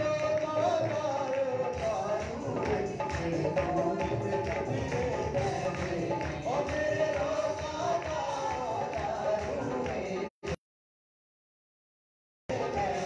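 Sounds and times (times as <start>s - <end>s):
musical accompaniment: 0.0s - 10.3s, 12.5s - 13.0s
man singing into microphone: 0.0s - 10.6s, 12.5s - 13.0s
steady percussion beat: 0.0s - 10.6s, 12.5s - 13.0s.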